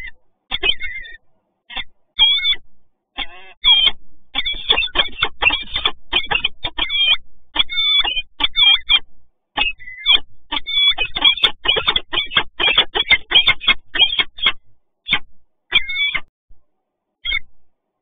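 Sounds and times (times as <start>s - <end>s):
falcons harsh repeated calls: 0.0s - 2.6s, 3.2s - 9.0s, 9.6s - 16.3s.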